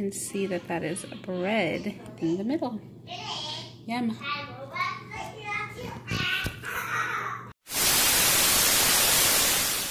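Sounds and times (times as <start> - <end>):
child talking: 3.1 - 7.5
tv static hiss: 7.7 - 9.9.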